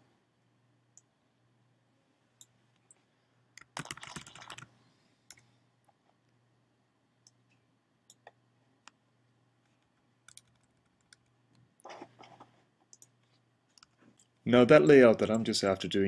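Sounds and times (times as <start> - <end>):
faint steady hum: 0.0 - 16.0
typing on computer keyboard: 3.6 - 4.7, 10.3 - 11.3.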